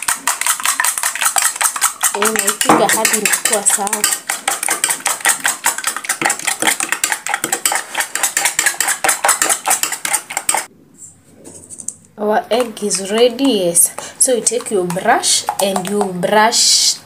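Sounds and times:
fork beating egg in bowl: 0.0 - 10.7, 12.5 - 16.6.

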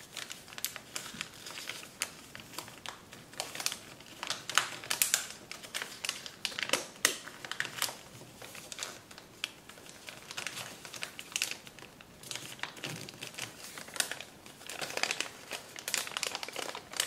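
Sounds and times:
paper crinkling as folded: 0.0 - 17.0.

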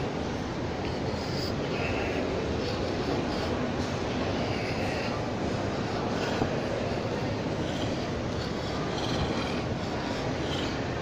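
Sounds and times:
faint distant voices: 0.0 - 11.0
indoor hall rumble: 0.0 - 11.0.

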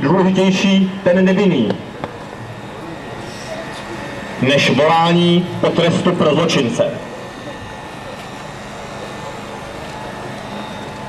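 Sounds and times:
street crowd noise: 0.0 - 11.0.

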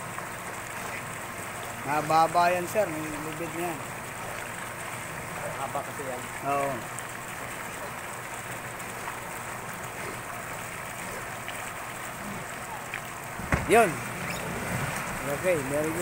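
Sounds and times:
churned pool water rushing: 0.0 - 16.0
sudden low thump: 13.4 - 13.8.

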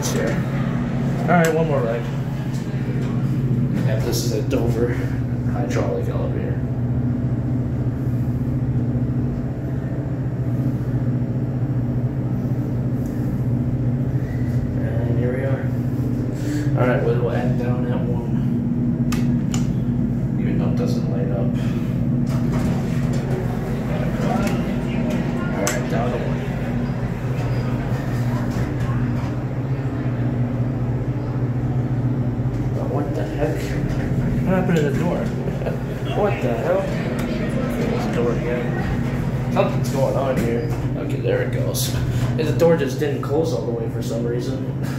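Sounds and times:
elevator humming: 0.0 - 44.9
elevator doors sliding open: 22.2 - 30.4, 32.5 - 41.2
murmur of shoppers: 22.3 - 41.0.

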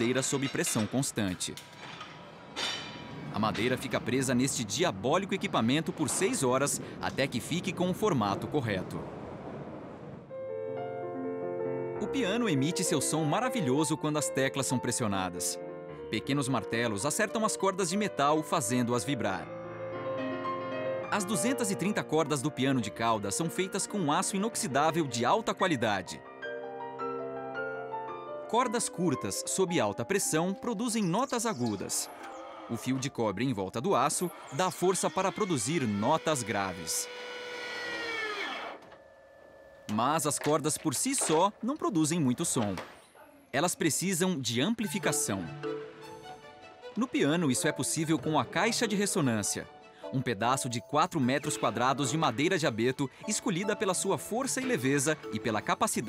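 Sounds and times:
grand piano chords ringing: 10.3 - 37.3, 38.8 - 42.6, 43.9 - 56.0
winding machine whine: 34.0 - 39.4.

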